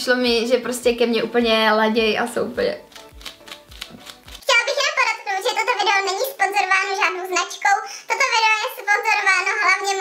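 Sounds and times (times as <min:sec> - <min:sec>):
woman talking: 0:00.0 - 0:02.9.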